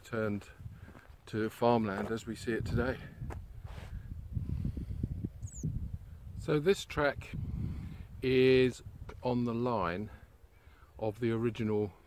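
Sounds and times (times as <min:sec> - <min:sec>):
wind buffeting microphone: 0:00.4 - 0:01.2, 0:02.0 - 0:09.3
small bird chirp: 0:05.4 - 0:05.8.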